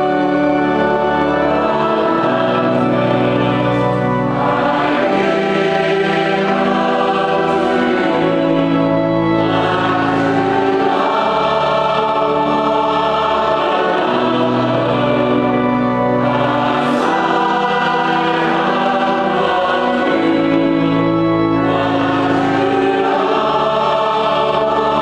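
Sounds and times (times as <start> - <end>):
choir singing slow held chords: 0.0 - 25.0.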